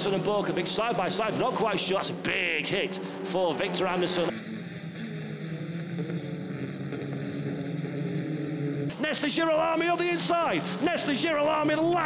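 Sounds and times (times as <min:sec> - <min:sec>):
racing car engines at high revs: 0:00.0 - 0:12.0.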